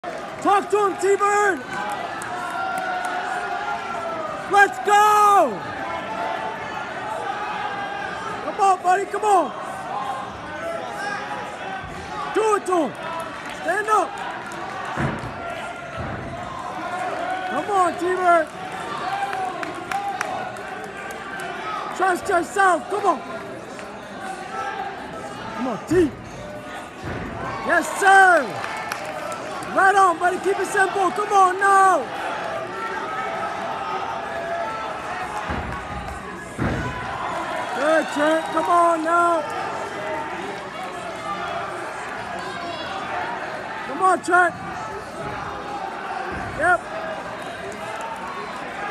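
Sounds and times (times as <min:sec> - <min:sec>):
gym hall hum: 0:00.0 - 0:48.9.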